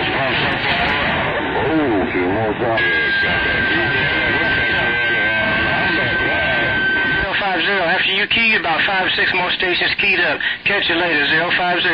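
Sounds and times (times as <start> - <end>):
garbled overlapping radio voices: 0.0 - 11.9.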